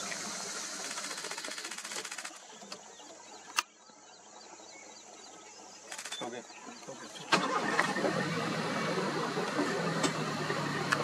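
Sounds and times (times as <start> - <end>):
outdoor background drone: 0.0 - 11.0.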